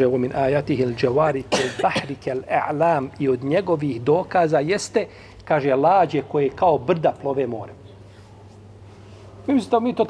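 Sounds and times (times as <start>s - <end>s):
man speaking: 0.0s - 7.8s, 9.5s - 10.0s.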